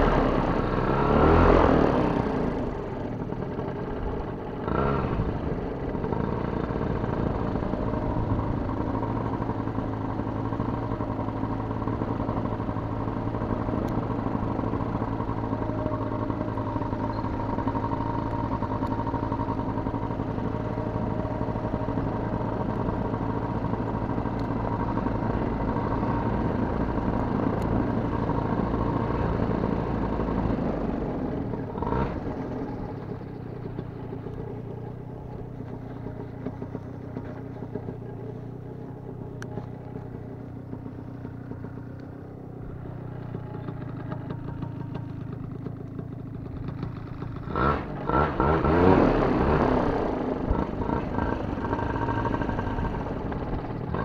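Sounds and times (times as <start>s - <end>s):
paramotor engine and propeller: 0.0s - 54.0s.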